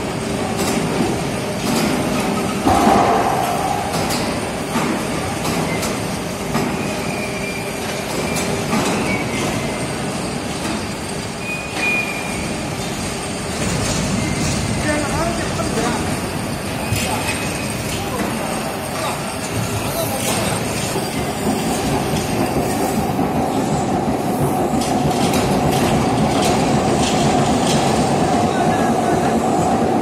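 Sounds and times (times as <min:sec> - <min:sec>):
heavy machinery rumbling and rattling: 0:12.5 - 0:30.0.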